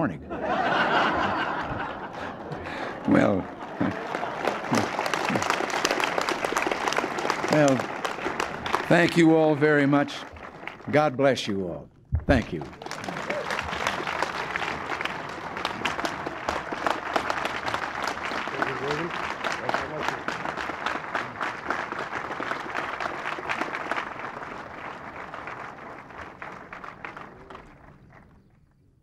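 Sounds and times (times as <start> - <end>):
crowd applauding: 0.0 - 11.6, 12.3 - 28.8.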